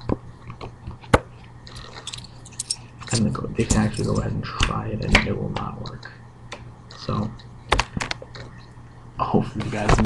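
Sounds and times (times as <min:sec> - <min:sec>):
card and coins handling: 0:01.8 - 0:04.4.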